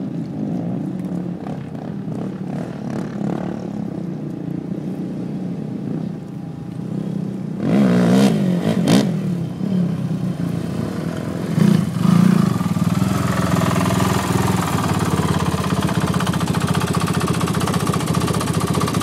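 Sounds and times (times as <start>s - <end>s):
quad engines revving: 10.8s - 19.0s
quad engine idling: 11.2s - 19.0s.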